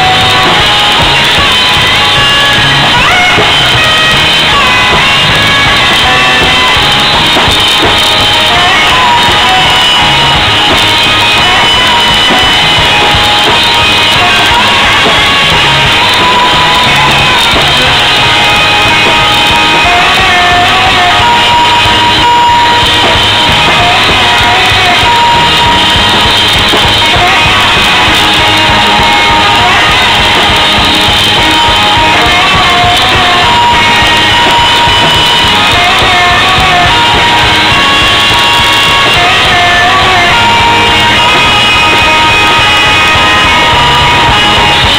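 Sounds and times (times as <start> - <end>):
drum kit: 0.0 - 44.9
electric guitar sustained notes: 0.0 - 44.9
loud distorted live rock band: 0.0 - 44.9.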